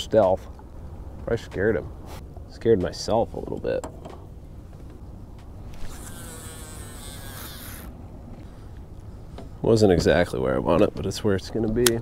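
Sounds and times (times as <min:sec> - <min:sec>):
fishing reel spool whirring: 0:05.7 - 0:08.0.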